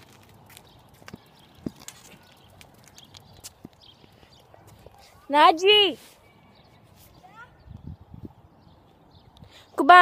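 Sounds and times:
bicycle rattling: 0.0s - 5.8s.

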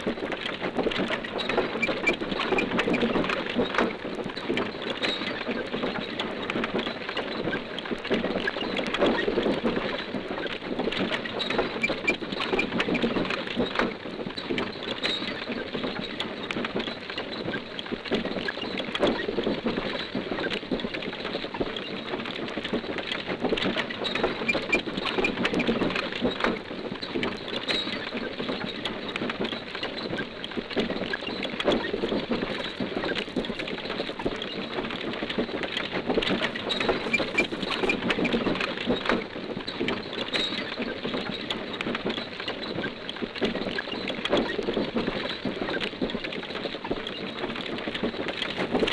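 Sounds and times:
rattle of rolling wheels: 0.0s - 48.9s
record crackle: 16.6s - 48.9s.

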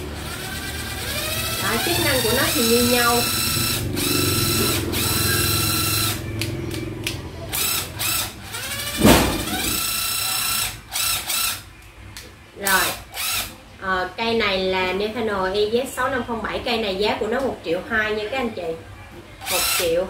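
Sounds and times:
cordless drill motor whine: 0.0s - 6.2s, 7.5s - 11.6s.

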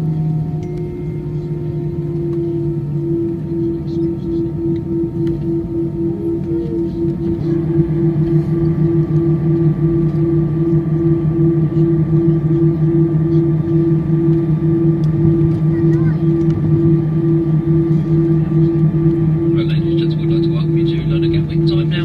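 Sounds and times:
high-pitched whine: 0.0s - 22.0s
pulsing aircraft engine drone: 0.0s - 22.0s.

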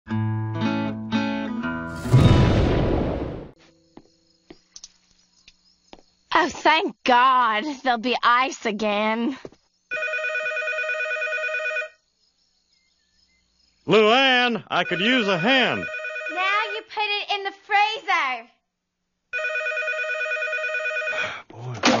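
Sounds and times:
crash sound effect: 1.9s - 3.6s
loud burst of noise: 1.9s - 3.6s
telephone ringing: 9.9s - 12.0s, 14.7s - 16.8s, 19.4s - 21.3s.

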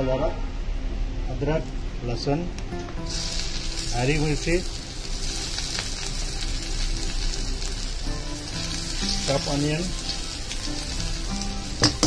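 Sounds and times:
faint background music: 0.0s - 12.0s
oil sizzling in a wok: 3.0s - 12.0s.

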